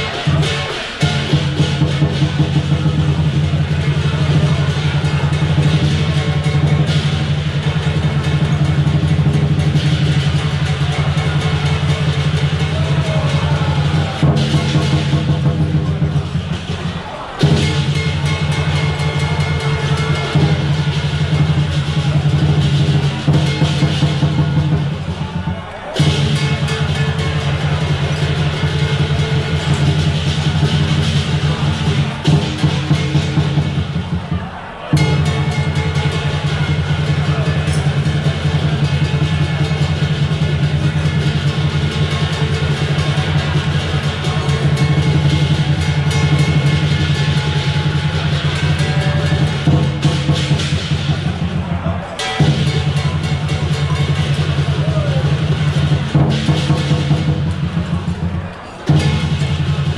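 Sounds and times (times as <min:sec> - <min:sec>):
cymbals and gong clashing: 0:00.0 - 0:59.9
drum beaten fast: 0:00.0 - 0:59.9
gong: 0:52.2 - 0:58.0.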